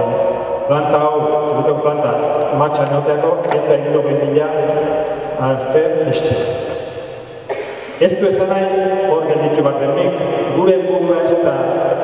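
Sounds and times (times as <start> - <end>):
man talking over pa: 0.0 - 6.8, 8.0 - 12.0.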